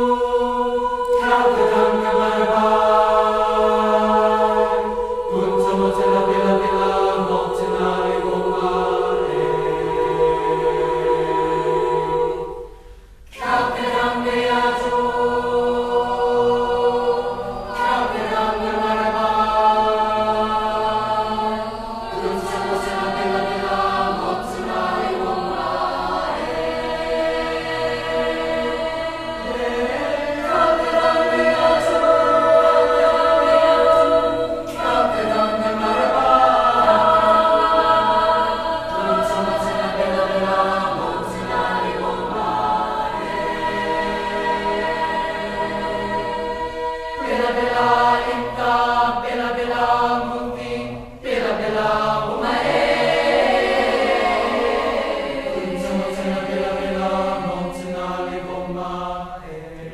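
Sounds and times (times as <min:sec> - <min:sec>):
choir singing in harmony: 0:00.0 - 0:59.9.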